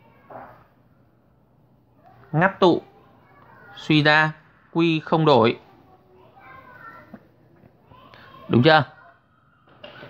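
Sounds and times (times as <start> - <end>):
faint children's voices: 0.0 - 10.0.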